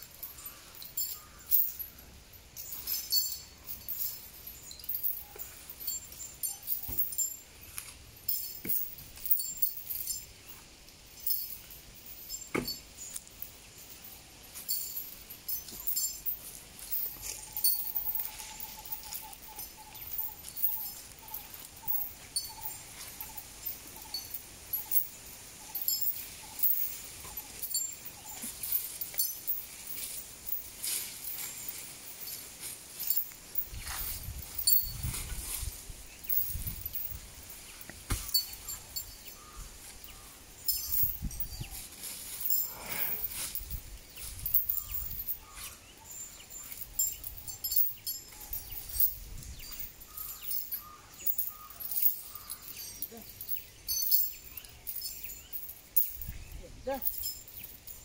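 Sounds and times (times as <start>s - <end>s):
metal chain clinking: 0.0s - 58.0s.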